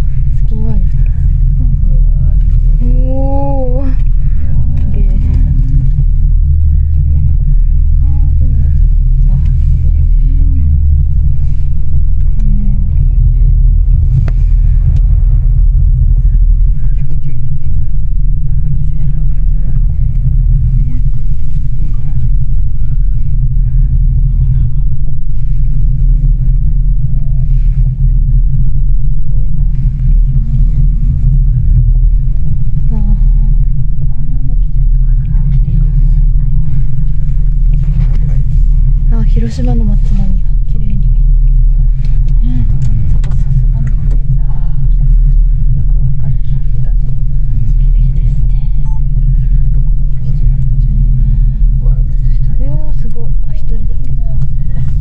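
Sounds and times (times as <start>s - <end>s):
gondola cabin low rumble: 0.0s - 55.0s.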